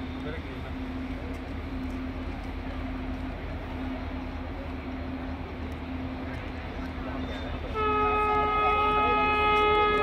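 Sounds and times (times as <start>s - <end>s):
train horn chord: 7.6s - 10.0s.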